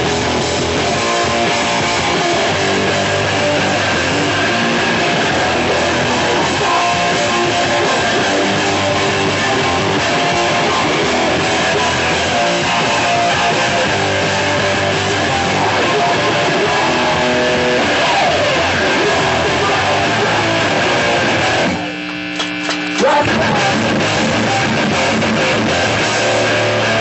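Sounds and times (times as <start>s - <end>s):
hardcore punk band playing live: 0.0s - 27.0s
loud electric guitars: 0.0s - 27.0s.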